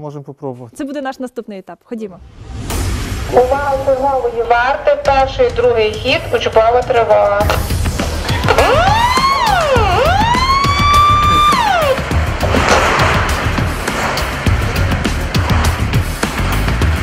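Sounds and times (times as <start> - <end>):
music with driving beat: 5.6 - 17.0
siren wailing: 8.2 - 12.2.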